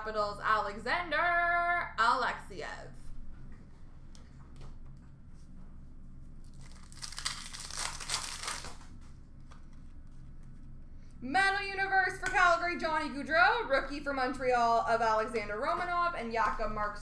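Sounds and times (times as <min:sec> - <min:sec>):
faint room hum: 0:00.0 - 0:17.0
wrapper tearing and crinkling: 0:06.4 - 0:08.9.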